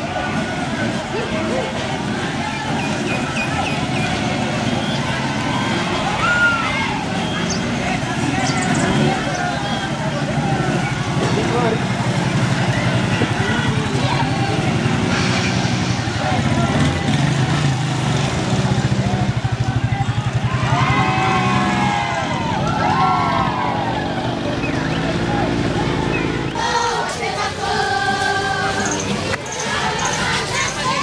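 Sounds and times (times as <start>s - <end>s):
people calling: 0.0s - 31.0s
people's voices: 0.0s - 31.0s
vehicle engine running at low revs: 0.0s - 31.0s.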